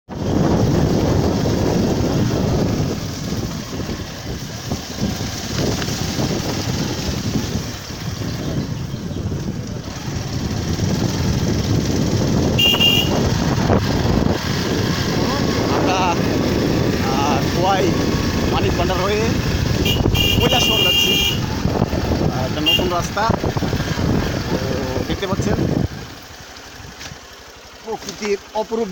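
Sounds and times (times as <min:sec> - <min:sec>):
wind noise on microphone: 0:00.1 - 0:27.2
motorcycle engine running: 0:00.1 - 0:28.9
voices: 0:14.8 - 0:23.6, 0:24.2 - 0:25.9, 0:27.8 - 0:28.9.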